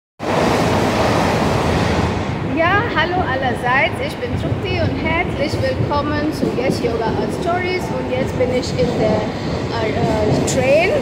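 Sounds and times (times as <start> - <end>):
electric train rumbling: 0.2 - 11.0.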